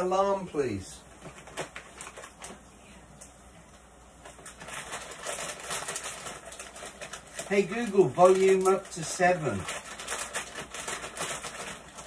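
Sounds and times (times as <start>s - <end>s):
plastic bag rustling: 1.1s - 2.6s, 4.2s - 12.0s.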